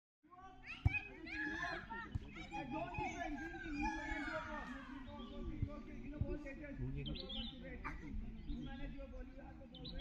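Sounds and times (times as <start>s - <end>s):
children shouting: 0.4s - 5.5s.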